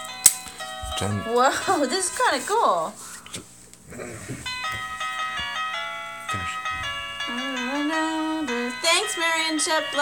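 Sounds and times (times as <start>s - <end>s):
electronic keyboard playing tune: 0.0s - 3.0s, 4.4s - 10.0s.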